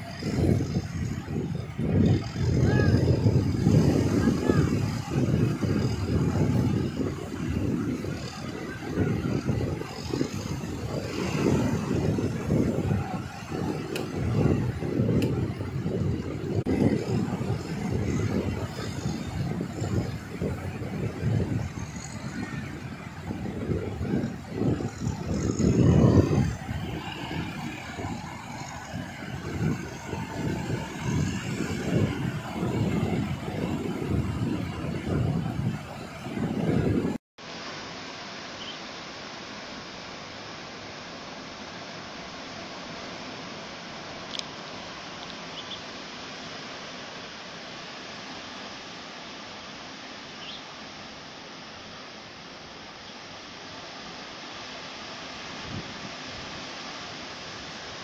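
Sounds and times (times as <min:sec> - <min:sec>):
wind buffeting microphone: 0:00.0 - 0:37.2, 0:55.5 - 0:56.6.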